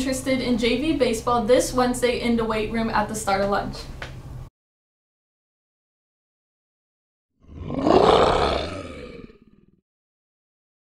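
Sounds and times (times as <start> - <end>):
big cat roaring: 7.4 - 9.8.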